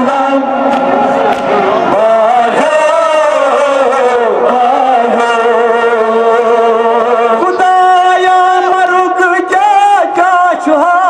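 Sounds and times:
men chanting a lament over loudspeaker: 0.0s - 11.0s.

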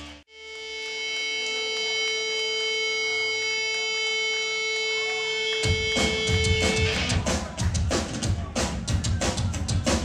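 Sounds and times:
guitar amplifier feedback drone: 0.0s - 7.2s.

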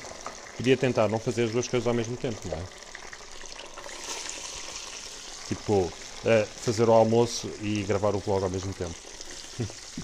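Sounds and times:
chips sizzling in hot oil: 0.0s - 10.0s.

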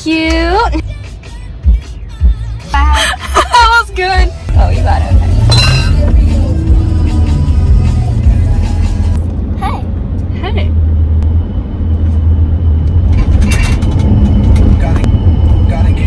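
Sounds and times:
car cabin rumble: 1.7s - 16.0s.

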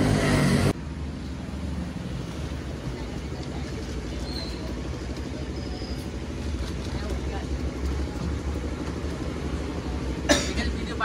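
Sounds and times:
street traffic rumble: 0.0s - 11.0s.

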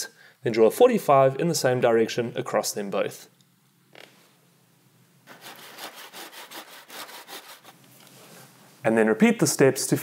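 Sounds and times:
hand saw cutting wood: 5.3s - 7.8s.

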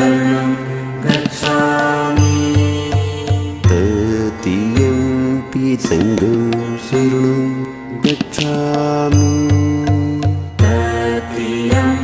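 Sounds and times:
devotional chant singing: 0.0s - 12.0s
instrumental music: 0.0s - 12.0s.

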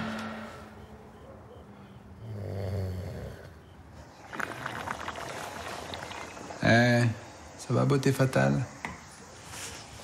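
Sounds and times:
man snoring: 2.2s - 3.5s.

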